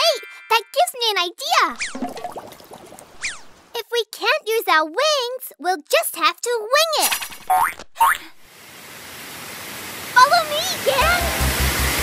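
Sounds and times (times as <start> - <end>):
rush of water: 8.5 - 12.0.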